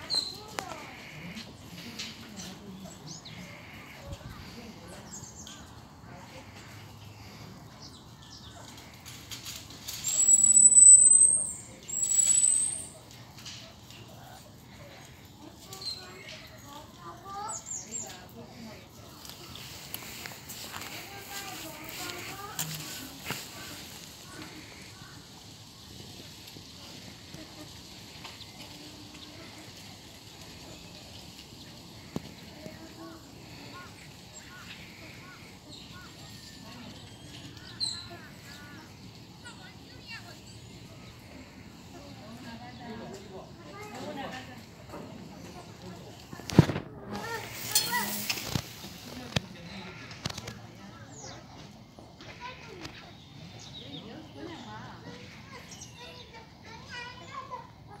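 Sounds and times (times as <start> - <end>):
children chattering: 0.0 - 58.0
outdoor background noise: 0.0 - 58.0.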